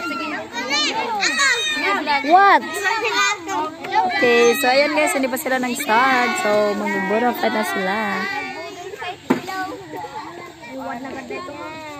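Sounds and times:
children chattering and calling out: 0.0s - 11.9s.

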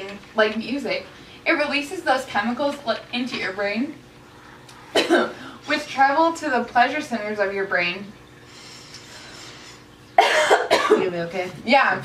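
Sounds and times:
woman coughing: 5.0s - 5.6s, 10.2s - 11.2s.

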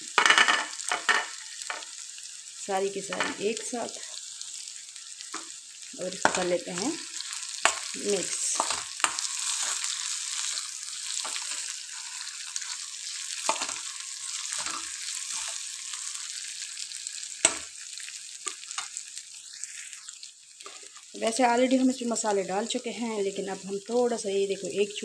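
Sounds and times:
food sizzling in hot oil: 0.0s - 25.0s
metal spatula scraping pan: 6.2s - 16.1s.

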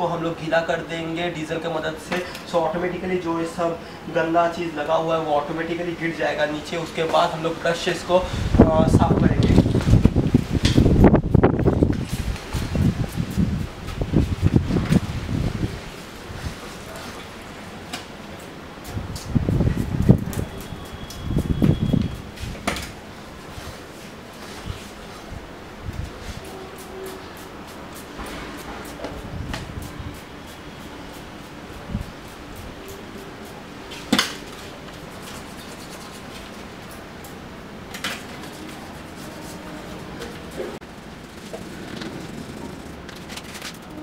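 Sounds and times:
brush scrubbing a chain: 26.2s - 37.4s.

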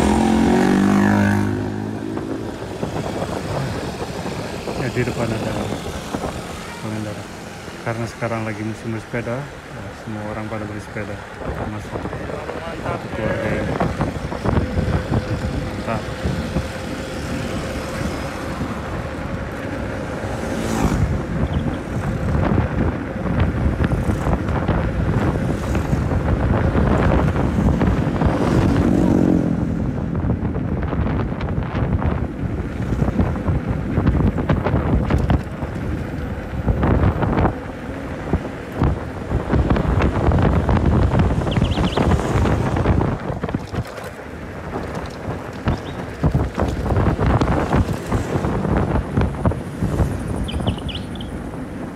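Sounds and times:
vehicle passing: 0.0s - 31.0s, 35.5s - 51.9s
motor traffic: 0.0s - 51.9s
wind buffeting microphone: 0.0s - 51.9s.

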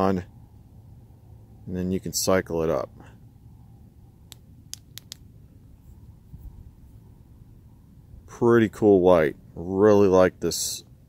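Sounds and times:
flashlight switch clicks: 4.3s - 5.2s.

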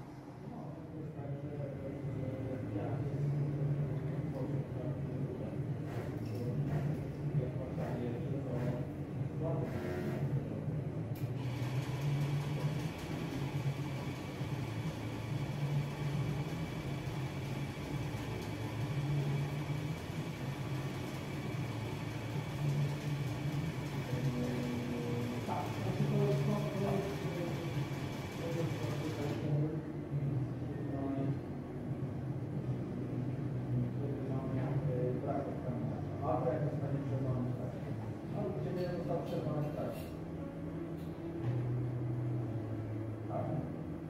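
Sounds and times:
machine low hum: 0.0s - 44.0s.

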